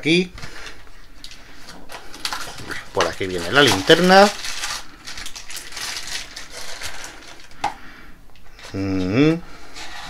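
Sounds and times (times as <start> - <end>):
wrapping sheet rustling: 0.4 - 7.6.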